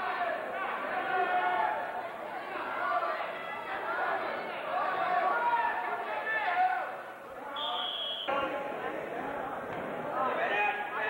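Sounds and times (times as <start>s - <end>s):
spectators shouting and chattering: 0.0s - 11.0s
referee's whistle blast: 7.6s - 8.4s.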